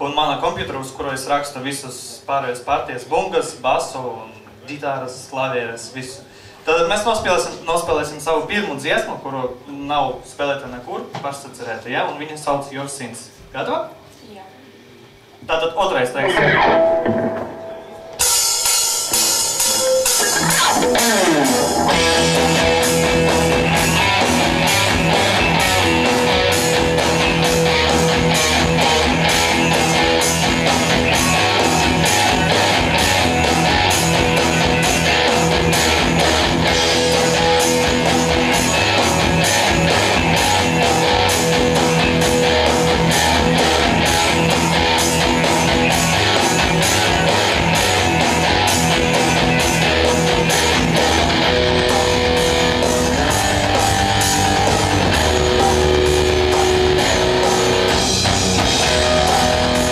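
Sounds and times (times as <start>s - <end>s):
electric guitar playing: 16.2s - 59.9s
backing track with drum beat: 16.4s - 59.9s.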